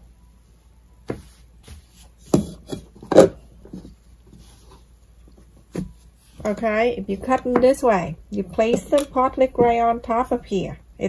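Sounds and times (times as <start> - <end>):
cloth rubbing and rustling: 1.0 - 3.0, 3.7 - 7.2.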